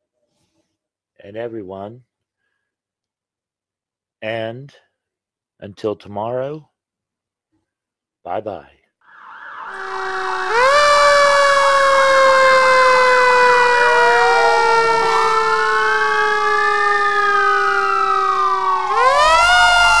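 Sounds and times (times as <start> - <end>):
fire engine siren: 9.1 - 20.0.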